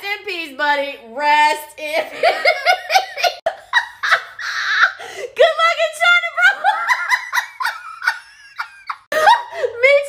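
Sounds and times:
woman wheezing laughter: 2.8 - 5.2.

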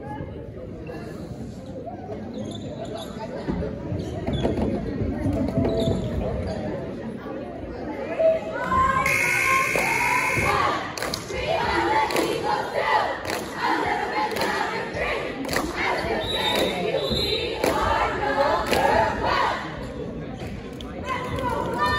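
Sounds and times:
crowd shouting and cheering: 8.3 - 19.8
steady high tone: 9.0 - 10.5.

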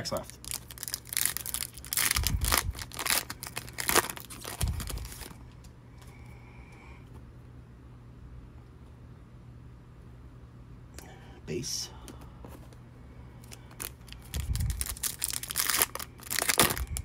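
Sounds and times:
foil wrapper tearing and crinkling: 0.0 - 5.4, 13.6 - 17.0.

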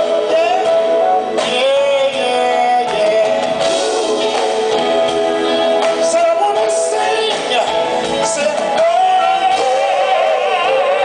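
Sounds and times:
live band playing slow groove: 0.0 - 11.0.

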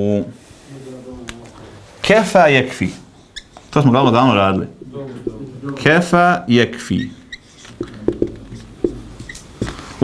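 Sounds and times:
marker squeaking on whiteboard: 3.2 - 3.9, 6.8 - 9.8.

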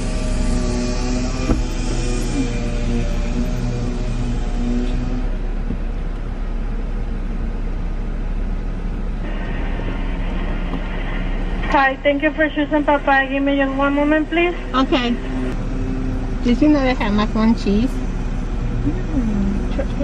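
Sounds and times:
car engine idling: 0.0 - 20.0
faint hum of several tones: 0.0 - 20.0.

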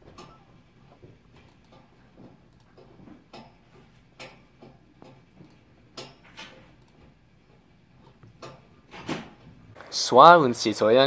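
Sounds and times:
computer mouse clicking: 2.5 - 3.5, 4.2 - 7.1.

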